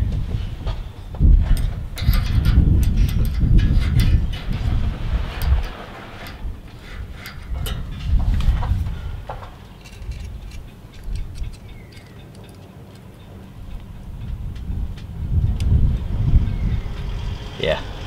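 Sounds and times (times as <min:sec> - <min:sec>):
uneven low rumble: 0:00.0 - 0:11.9
clicks and taps of metal parts: 0:01.4 - 0:04.6, 0:09.3 - 0:13.9.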